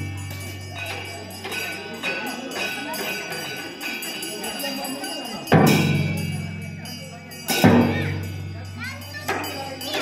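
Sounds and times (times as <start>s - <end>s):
ringing percussion stroke: 0.0s - 10.0s.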